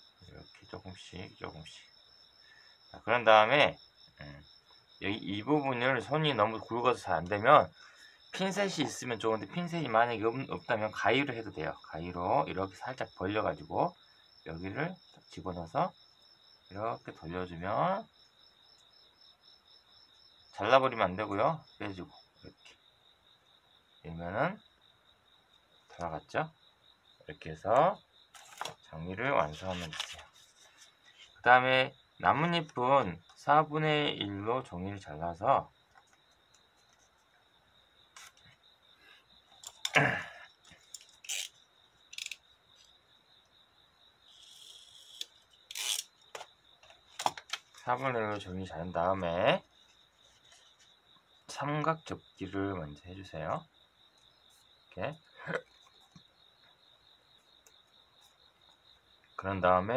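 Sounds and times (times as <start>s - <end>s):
paper crinkling and rustling: 28.3s - 28.8s, 29.5s - 31.4s
soft sliding rustle: 29.6s - 31.4s.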